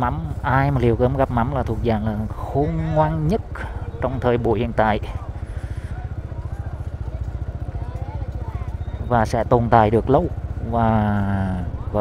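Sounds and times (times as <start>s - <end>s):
motorbike engine running: 0.0s - 12.0s
crowd chatter: 0.7s - 10.8s.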